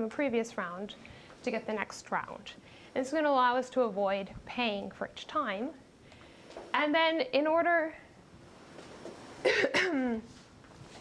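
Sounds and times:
woman clearing her throat: 0:09.4 - 0:10.3.

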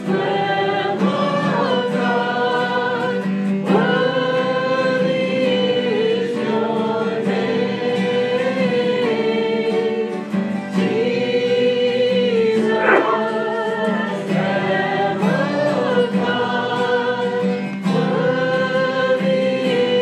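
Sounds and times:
congregation singing a hymn: 0:00.0 - 0:20.0
strummed acoustic guitars: 0:00.0 - 0:20.0.

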